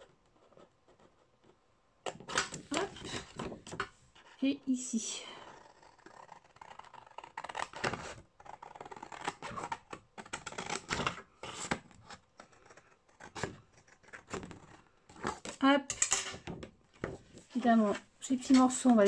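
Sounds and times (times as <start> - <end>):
scissors snipping paper: 2.2 - 3.8, 5.5 - 16.4.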